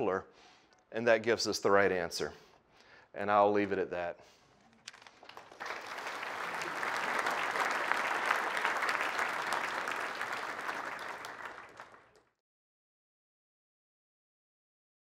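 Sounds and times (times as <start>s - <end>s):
audience applauding: 4.8s - 12.3s.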